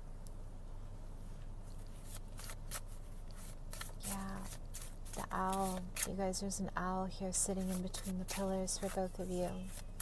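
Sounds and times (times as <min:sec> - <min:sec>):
cards shuffling: 0:01.7 - 0:06.2, 0:07.6 - 0:10.0.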